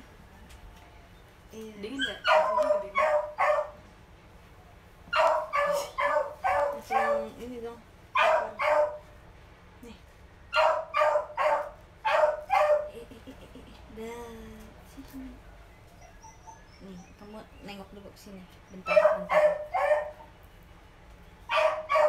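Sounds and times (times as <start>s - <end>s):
small dog yapping: 1.9s - 3.8s, 5.1s - 7.4s, 8.2s - 9.0s, 10.6s - 12.9s, 18.8s - 20.3s, 21.5s - 22.0s.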